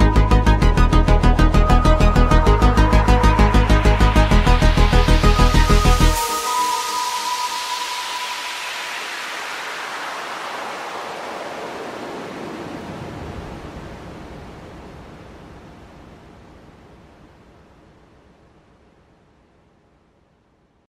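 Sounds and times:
downward sweeping noise hiss: 0.0 - 19.5
held electronic tone: 1.4 - 9.7.

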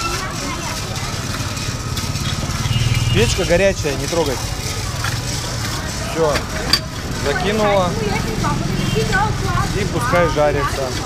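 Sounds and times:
motor running with low drone: 0.0 - 11.0.

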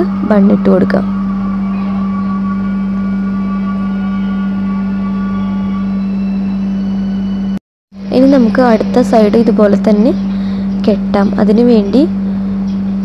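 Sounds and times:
loud steady low hum: 0.0 - 13.0.

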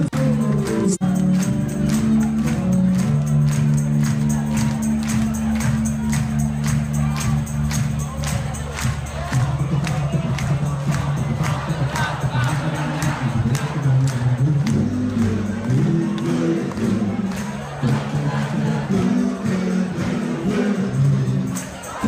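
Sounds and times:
bass line: 0.0 - 22.0
crowd clapping along: 0.0 - 22.0.

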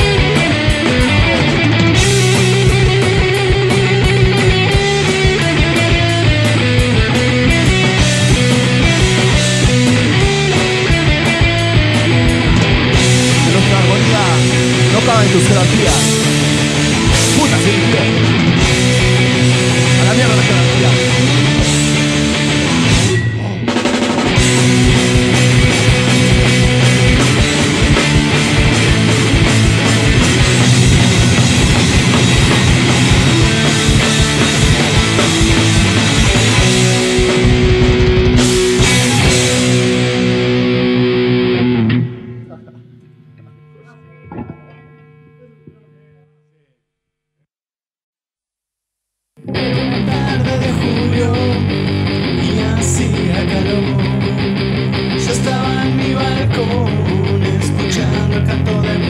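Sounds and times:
rock band music: 0.0 - 45.7, 49.4 - 59.0
guitar chord ringing: 6.6 - 46.2.

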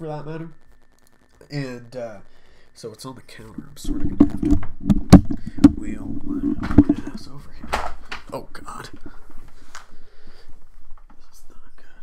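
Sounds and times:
microphone handling knocks: 3.7 - 8.3.

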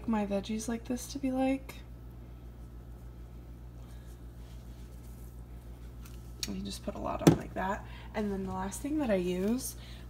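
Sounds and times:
room tone hum: 0.0 - 10.0.

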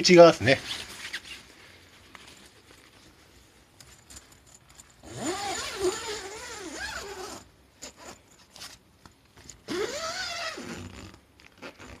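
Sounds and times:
tent zipper being pulled: 5.0 - 8.2, 9.6 - 12.0.

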